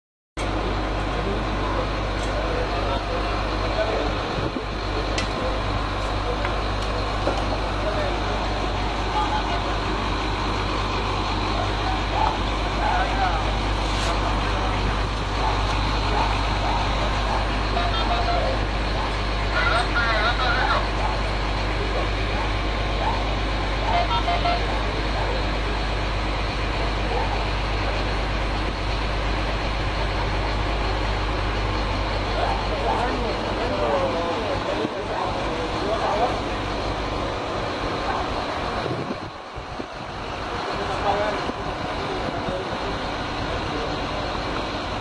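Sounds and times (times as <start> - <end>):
faint voices: 0.4 - 45.0
vehicle engine idling: 0.4 - 45.0.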